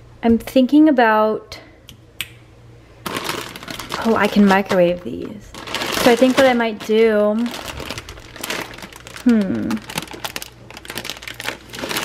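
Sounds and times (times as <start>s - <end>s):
plastic bag crinkling: 3.0s - 12.0s.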